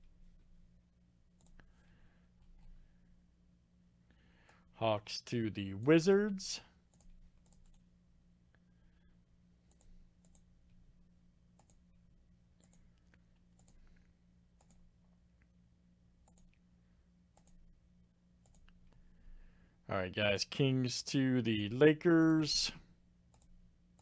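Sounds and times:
low steady hum: 0.0s - 24.0s
computer mouse clicks: 1.4s - 1.7s, 6.9s - 7.8s, 9.6s - 10.5s, 11.6s - 11.8s, 12.6s - 14.9s, 16.2s - 16.6s, 17.3s - 17.6s, 18.4s - 18.9s, 23.3s - 24.0s.

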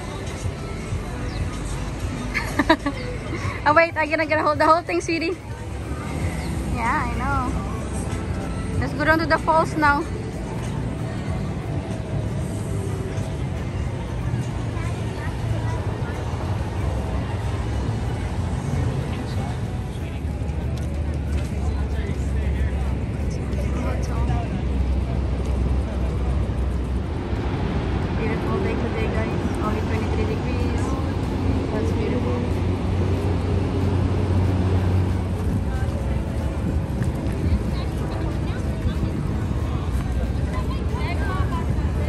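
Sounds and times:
people talking: 0.0s - 42.0s
steady low rumble: 0.0s - 42.0s.

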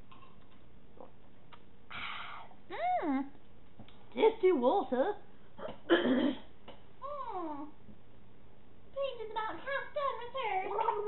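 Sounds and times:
low room hiss: 0.0s - 11.0s.

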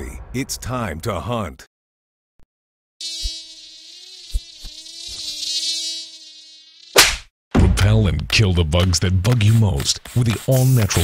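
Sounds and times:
flying insect buzzing: 3.0s - 7.3s.

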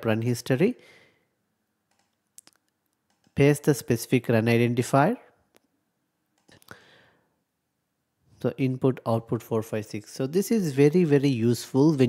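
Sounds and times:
computer mouse clicking: 1.9s - 3.4s.

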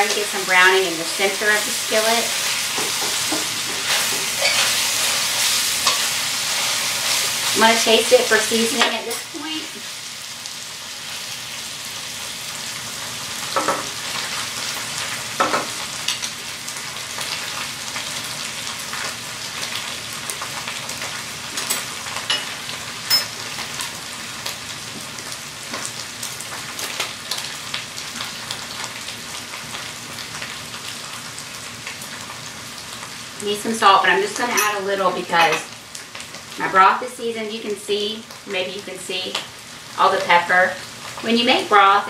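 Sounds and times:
meat sizzling in a skillet: 0.0s - 42.0s.

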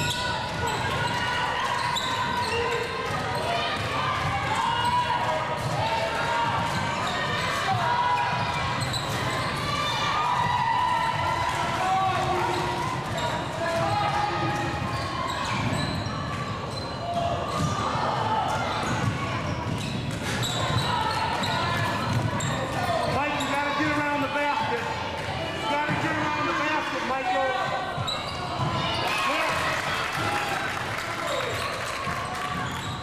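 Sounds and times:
babble of many voices: 0.0s - 33.0s.

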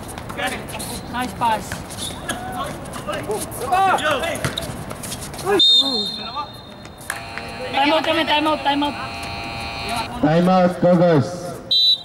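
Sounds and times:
referee's whistle: 5.5s - 10.0s, 11.7s - 12.0s
players shouting: 7.1s - 10.2s
electric game buzzer: 7.2s - 10.1s.

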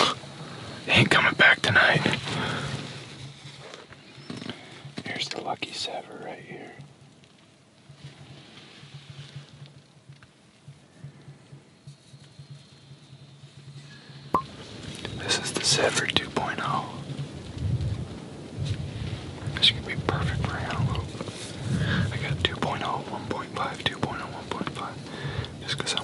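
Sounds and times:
people whispering: 0.0s - 2.8s, 4.5s - 6.8s, 15.2s - 17.1s, 19.5s - 26.0s.

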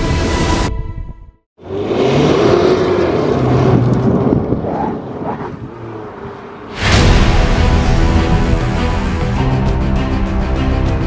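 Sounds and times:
road noise: 1.6s - 11.0s.

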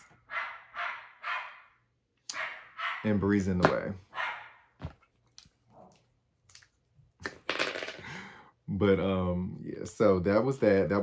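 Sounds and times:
dog barking: 0.2s - 3.2s, 4.1s - 4.8s.

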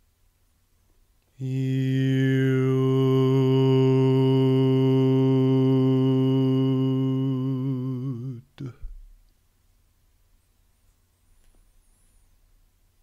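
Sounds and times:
man chanting long low note: 1.4s - 8.8s.

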